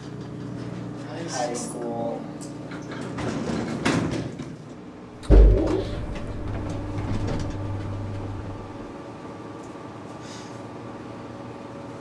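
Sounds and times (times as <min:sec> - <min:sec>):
elevator doors sliding shut: 0:05.2 - 0:08.9
elevator car hum: 0:05.2 - 0:09.0.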